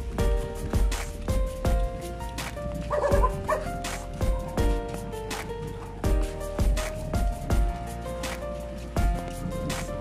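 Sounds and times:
background music with steady beat: 0.0s - 10.0s
dog yipping: 2.9s - 3.8s.

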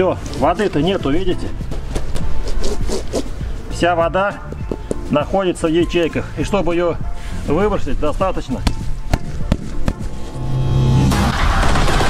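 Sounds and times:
background music with percussive hits: 0.2s - 6.0s, 8.2s - 12.0s.

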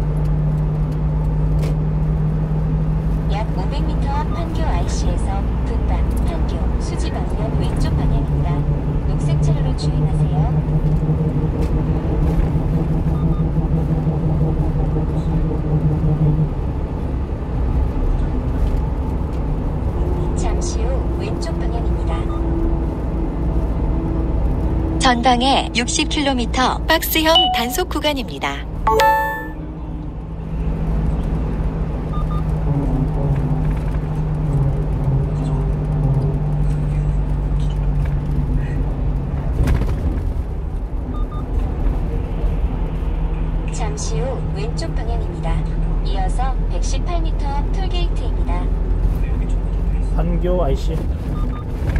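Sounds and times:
truck engine and road noise: 0.0s - 51.9s.

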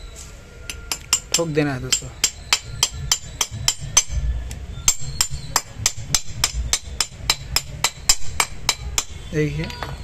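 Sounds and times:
metal tool tapping bearing: 0.7s - 4.2s, 4.9s - 10.0s.

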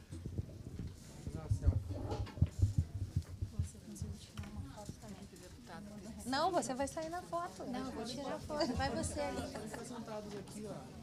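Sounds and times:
faint chatter of voices: 0.9s - 11.0s.

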